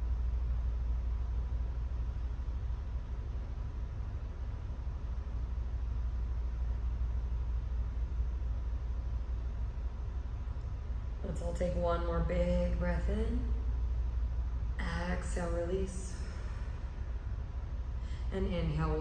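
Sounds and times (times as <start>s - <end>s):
low background rumble: 0.0s - 19.0s.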